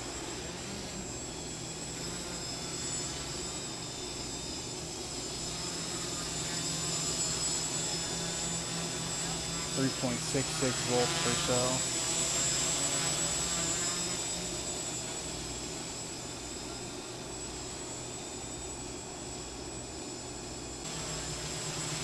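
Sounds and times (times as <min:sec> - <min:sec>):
drone propellers humming: 0:00.0 - 0:22.0.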